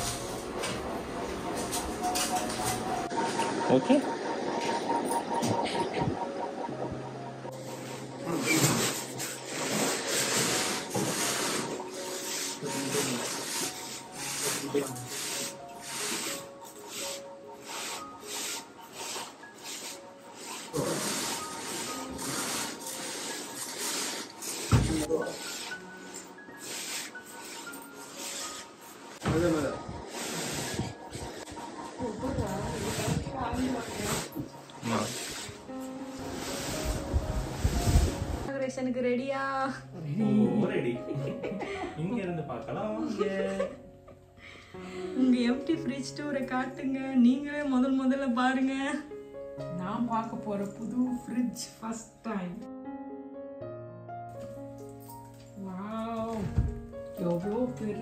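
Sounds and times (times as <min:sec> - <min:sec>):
refrigerator scraping along floor: 0:00.0 - 0:38.5
background music: 0:00.0 - 0:58.0.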